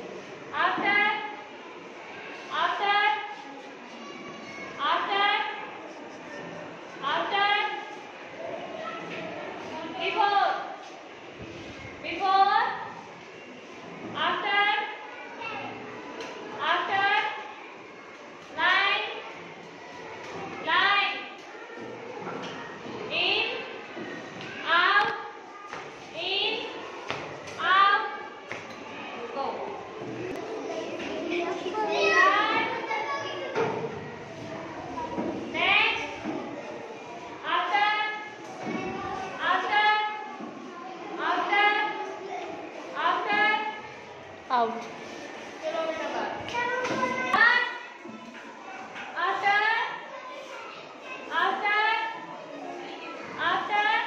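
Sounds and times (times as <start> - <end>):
young children chattering: 0.0 - 54.0
child's high voice: 31.8 - 33.5.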